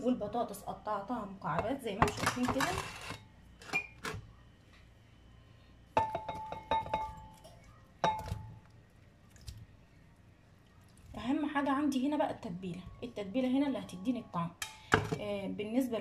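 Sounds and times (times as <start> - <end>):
ceramic bowls clinking: 6.0 - 8.6.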